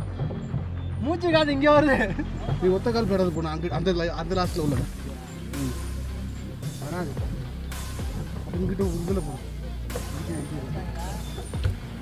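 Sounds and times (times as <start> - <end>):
indistinct voices talking: 0.0 - 12.0
low knocks: 11.3 - 12.0.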